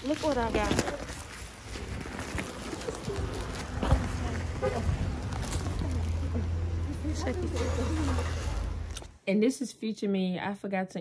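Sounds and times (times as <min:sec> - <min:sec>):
low street rumble: 0:00.0 - 0:09.2
murmuring voices of passers-by: 0:00.2 - 0:09.1.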